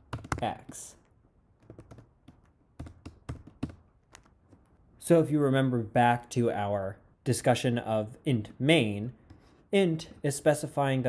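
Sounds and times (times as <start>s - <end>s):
computer keyboard typing: 0.0s - 1.0s, 1.6s - 4.8s.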